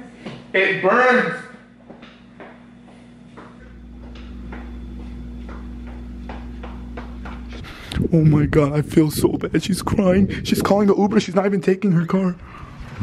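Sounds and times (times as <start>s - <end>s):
soft footsteps: 1.8s - 8.2s.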